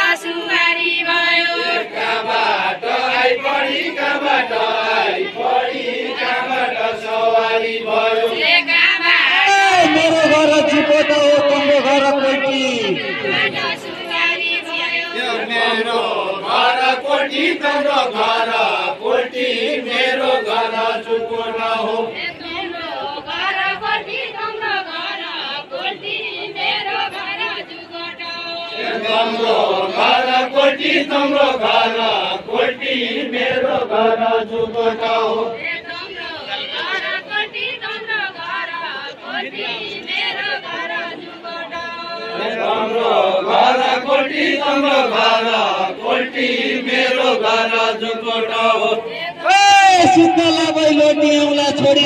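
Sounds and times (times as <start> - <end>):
men singing in chorus: 0.0 - 11.8, 12.8 - 26.8, 28.5 - 36.0, 42.0 - 50.4.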